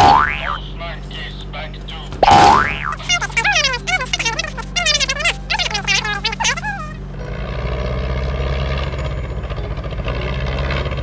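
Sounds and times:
cartoon boing sound effect: 0.0s - 0.6s, 2.2s - 3.0s
fast squeaky high-pitched chattering: 2.7s - 7.0s.

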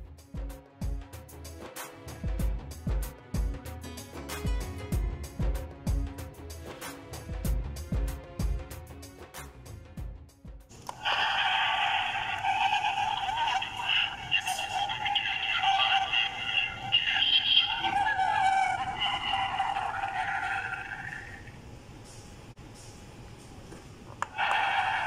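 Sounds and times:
background music with a beat: 0.0s - 10.7s
recorded voice through small speaker: 11.0s - 21.4s.

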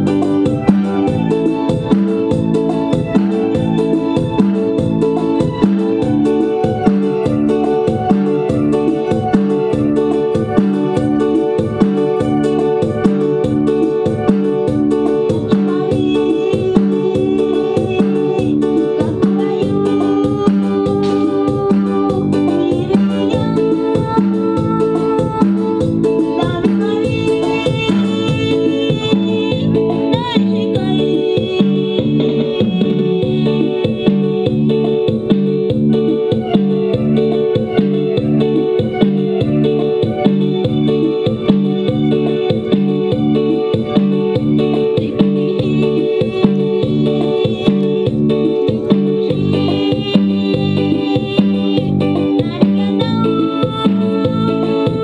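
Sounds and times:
live band playing dance music: 0.0s - 55.0s.

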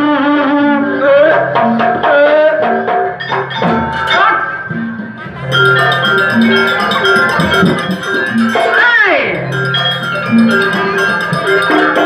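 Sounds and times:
gamelan ensemble music: 1.2s - 12.0s
high metallic ringing pattern: 5.4s - 12.0s.

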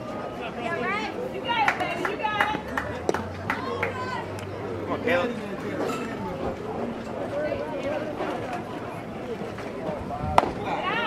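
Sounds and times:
spectators' voices: 0.0s - 11.0s
baseball sharp crack: 10.3s - 10.8s.

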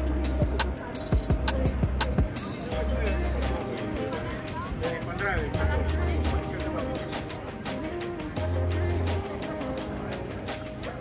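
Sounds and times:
background music with low beat: 0.0s - 11.0s.

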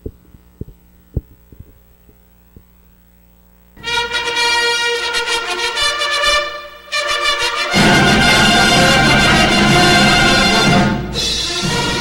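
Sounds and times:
soft low thumps: 0.0s - 3.0s
low electrical hum: 0.0s - 9.8s.

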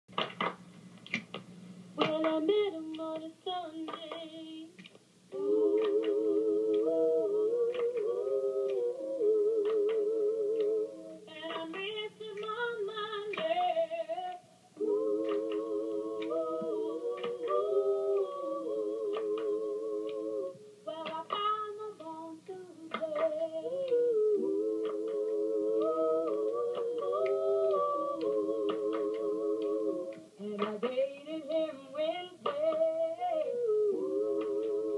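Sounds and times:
voices singing in harmony: 2.0s - 34.9s.

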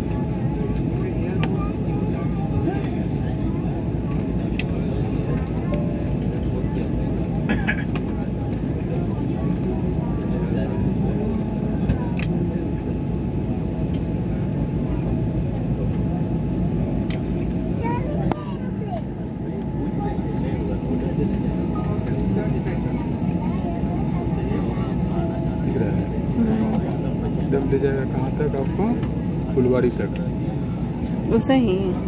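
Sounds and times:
airliner engines rumbling: 0.0s - 32.0s
passengers' voices: 0.0s - 32.0s.

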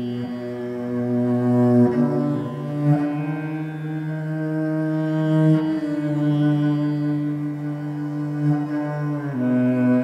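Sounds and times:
cello bowing low notes: 0.0s - 10.0s.

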